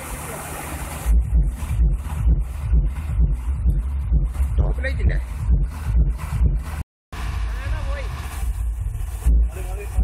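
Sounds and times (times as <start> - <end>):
bus engine rumble: 0.0 - 10.0.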